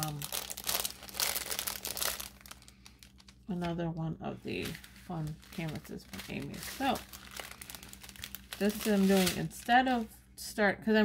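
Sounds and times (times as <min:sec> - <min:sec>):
plastic bag crinkling: 0:00.0 - 0:03.8, 0:04.5 - 0:10.1.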